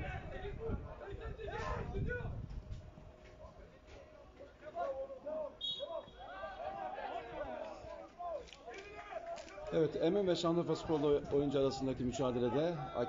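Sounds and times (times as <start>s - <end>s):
voices shouting: 4.6s - 9.9s, 10.6s - 13.0s
referee's whistle blast: 5.6s - 6.3s.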